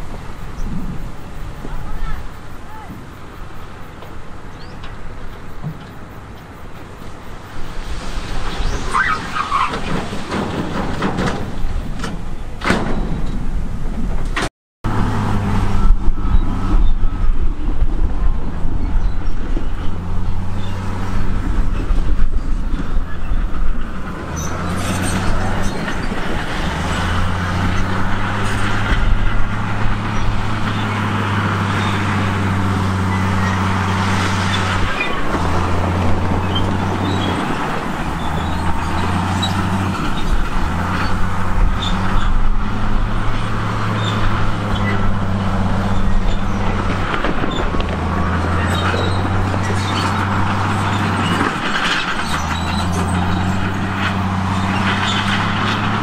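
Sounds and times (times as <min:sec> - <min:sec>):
diesel engine hum: 0:00.0 - 0:56.0
grinding rumble: 0:00.0 - 0:56.0
scattered knocks: 0:09.7 - 0:14.5.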